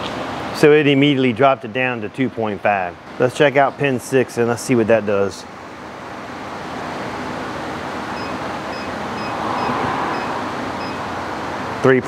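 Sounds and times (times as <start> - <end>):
faint high beeps: 8.2 - 11.0.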